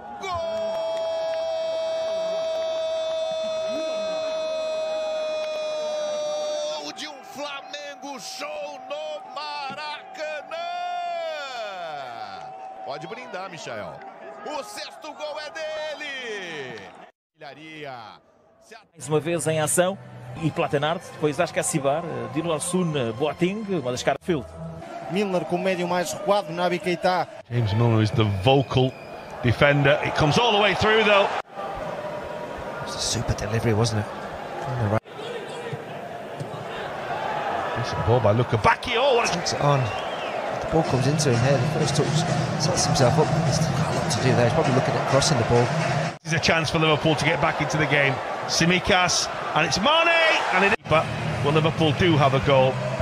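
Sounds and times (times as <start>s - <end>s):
stadium crowd noise: 0.0s - 17.8s, 23.7s - 53.0s.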